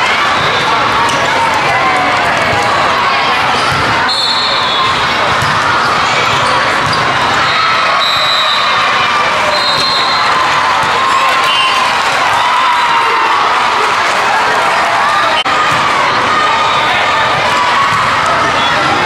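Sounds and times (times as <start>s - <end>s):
volleyballs hit and bouncing: 0.0s - 13.1s, 15.4s - 19.0s
voices shouting and chattering: 0.0s - 19.0s.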